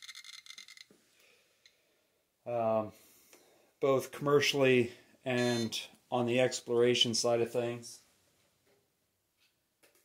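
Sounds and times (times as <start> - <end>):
geiger counter clicking: 0.0 - 0.9.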